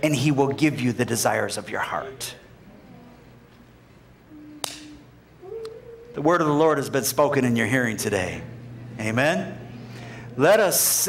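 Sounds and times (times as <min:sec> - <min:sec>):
faint short hummed tones: 0:04.2 - 0:10.4.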